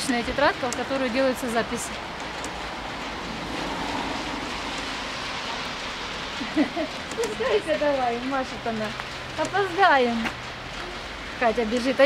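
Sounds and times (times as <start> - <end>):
traffic on wet street: 0.0 - 12.0.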